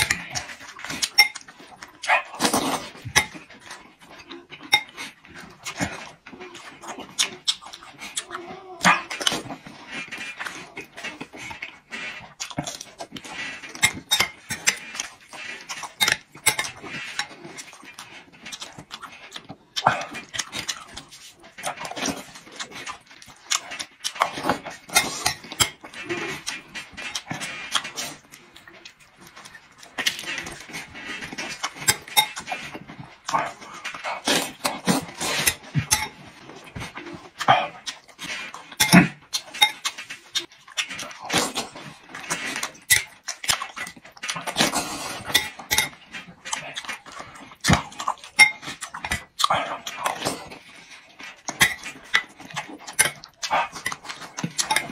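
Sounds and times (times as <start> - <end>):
man chewing and slurping: 0.0 - 54.9.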